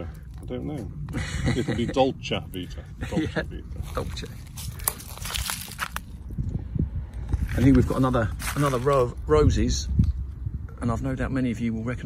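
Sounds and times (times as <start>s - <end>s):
footsteps crunching on dry soil: 3.7s - 6.2s, 7.2s - 9.2s.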